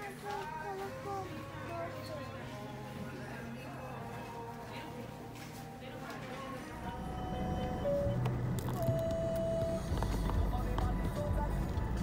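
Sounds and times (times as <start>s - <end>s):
car engine and road rumble: 7.1s - 12.0s.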